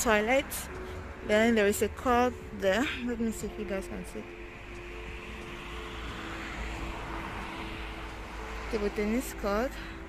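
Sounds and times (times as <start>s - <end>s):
low traffic rumble: 0.0s - 10.0s
vehicle passing: 0.0s - 10.0s.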